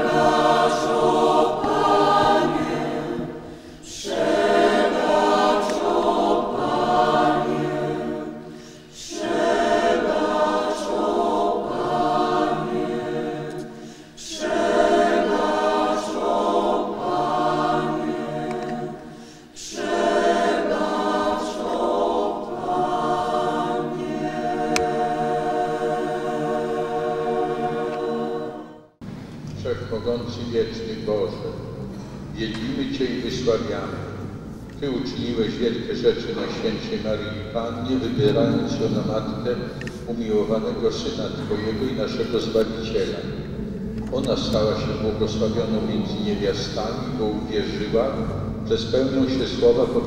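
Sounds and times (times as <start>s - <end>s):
mixed choir singing: 0.0s - 29.0s, 32.5s - 50.0s.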